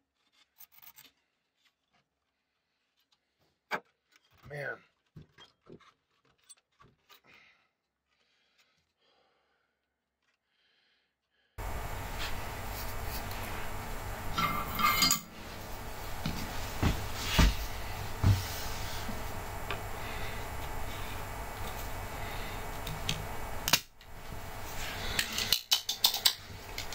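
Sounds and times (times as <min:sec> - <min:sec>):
steady low hum: 0:11.6 - 0:26.9.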